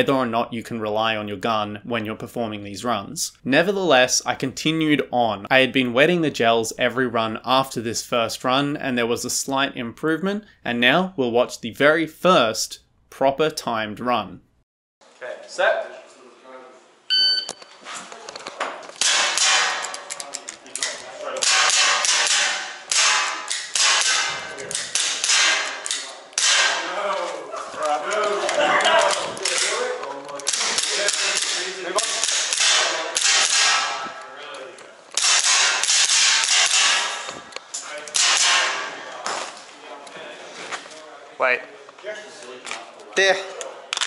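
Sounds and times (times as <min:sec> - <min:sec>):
short beep: 0:17.1 - 0:17.7
movement noise: 0:39.1 - 0:41.2.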